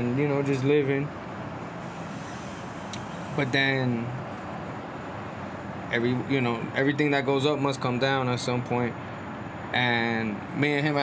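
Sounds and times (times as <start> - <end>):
distant city traffic hum: 0.0 - 11.0.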